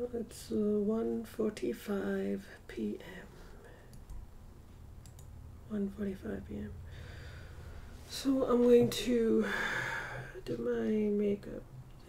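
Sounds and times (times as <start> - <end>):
low room hum: 0.0 - 12.0
faint short clicks: 5.0 - 5.3.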